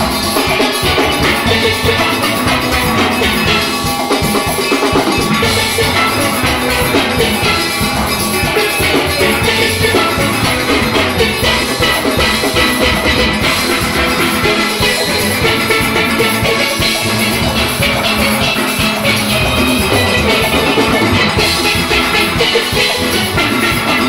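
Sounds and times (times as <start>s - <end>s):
drum kit beat: 0.0s - 24.0s
steelpans playing: 0.0s - 24.0s.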